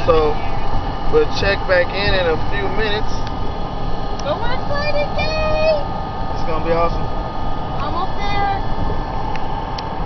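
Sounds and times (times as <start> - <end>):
road and engine noise in car: 0.0 - 10.0.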